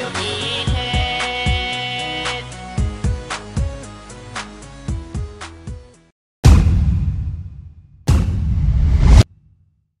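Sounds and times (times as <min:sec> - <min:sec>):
loud whoosh sound effect: 0:08.1 - 0:09.3.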